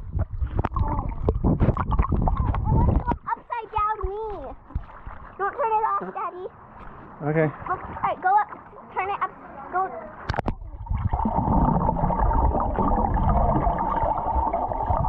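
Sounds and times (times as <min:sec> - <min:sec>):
muffled underwater rumble: 0:00.0 - 0:03.3, 0:10.3 - 0:15.0
dull underwater knocks: 0:00.0 - 0:05.7
children calling and talking: 0:02.5 - 0:04.7, 0:07.6 - 0:10.3.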